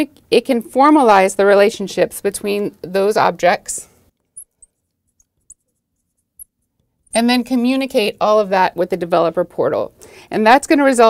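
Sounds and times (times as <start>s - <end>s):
high squeaks of marker on glass: 4.4s - 7.3s
marker writing on glass: 4.4s - 7.3s.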